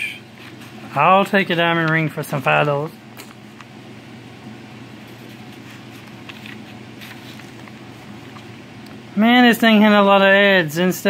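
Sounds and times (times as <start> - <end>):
low room hum: 0.0 - 11.0
paper pages rustling: 0.4 - 0.8, 5.0 - 8.5.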